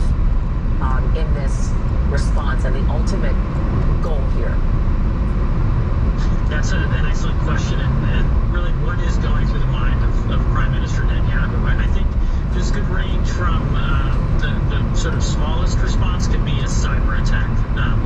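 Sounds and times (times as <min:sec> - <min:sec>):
tyre and engine rumble: 0:00.0 - 0:18.0
indistinct talk: 0:00.8 - 0:04.6, 0:06.2 - 0:18.0.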